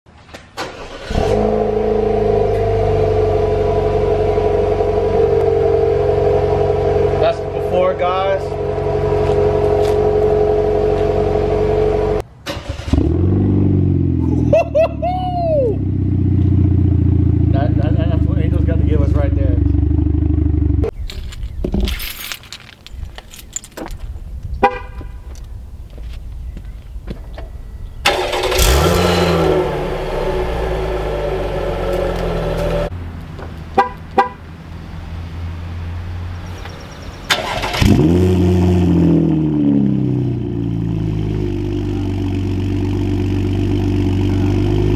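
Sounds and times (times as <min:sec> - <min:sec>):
car exhaust revving: 0:00.8 - 0:12.2, 0:12.8 - 0:20.9, 0:28.1 - 0:32.9, 0:37.3 - 0:44.9.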